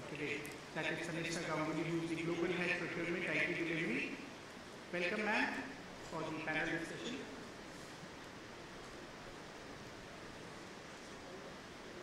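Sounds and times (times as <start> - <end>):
faint hall room tone hiss: 0.0 - 12.0.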